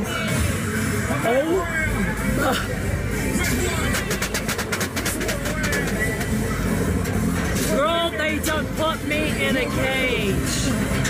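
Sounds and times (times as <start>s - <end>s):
rapid clicks or rattles: 3.9s - 6.4s.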